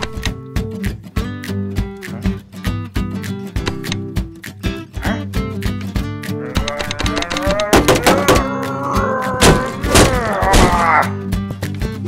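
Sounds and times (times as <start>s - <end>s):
background music: 0.0s - 12.0s
cartoon character strained cry: 6.4s - 11.2s.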